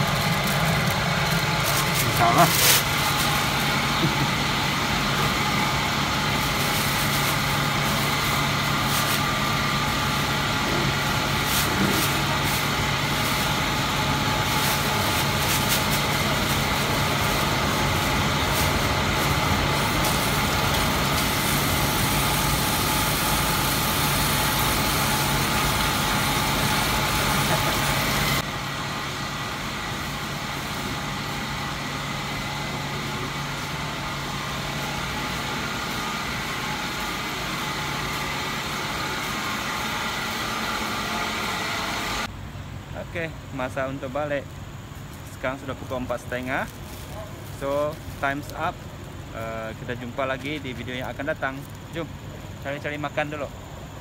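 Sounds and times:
mechanical hum with drone: 0.0s - 54.0s.

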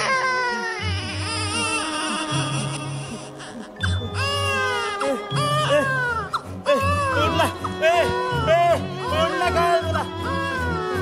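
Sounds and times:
high-pitched crying wail: 0.0s - 11.0s.

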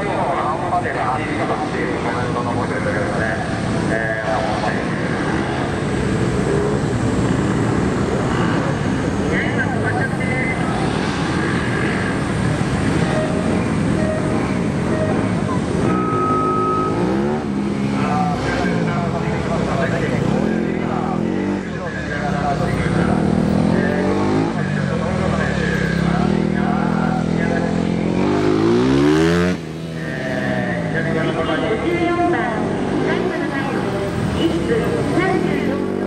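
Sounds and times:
other motorcycle engines running: 0.0s - 36.0s
motorcycle engine revving: 1.4s - 36.0s.

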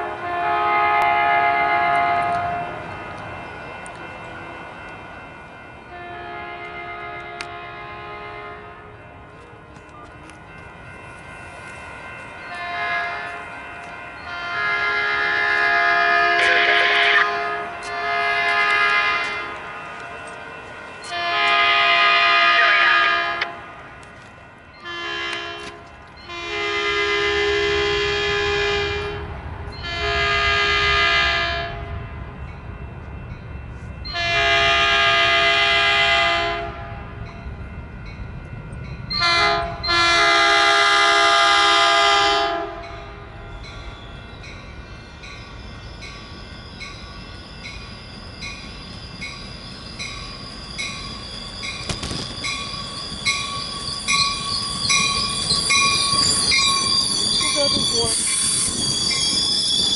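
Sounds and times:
train air horn blasts: 0.0s - 2.8s, 5.9s - 9.0s, 12.5s - 13.4s, 14.2s - 19.6s, 21.1s - 23.7s, 24.8s - 31.9s, 34.1s - 37.2s, 39.1s - 43.3s
train rumble: 0.0s - 59.9s.

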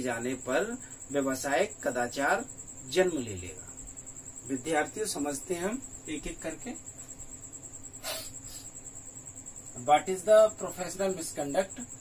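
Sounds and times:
insect pulsing trill: 0.0s - 12.0s
short hiss: 8.0s - 8.7s.

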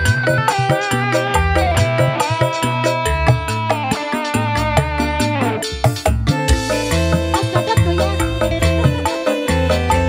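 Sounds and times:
electric bass: 0.0s - 10.0s
keyboard melody: 0.0s - 10.0s
steady drum rhythm: 0.0s - 10.0s.

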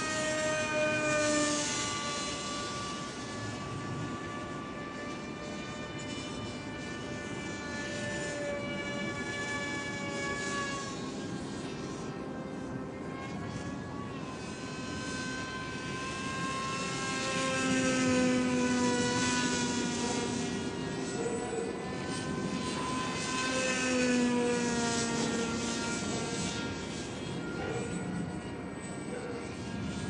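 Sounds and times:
model plane motor droning: 0.0s - 30.0s.

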